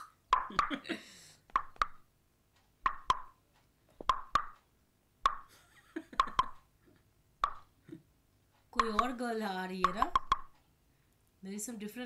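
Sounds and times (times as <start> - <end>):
hollow plopping knocks: 0.3 - 0.8, 1.5 - 2.0, 2.9 - 3.4, 4.0 - 4.6, 5.2 - 5.5, 6.2 - 6.6, 7.4 - 7.7, 8.8 - 9.2, 9.8 - 10.5.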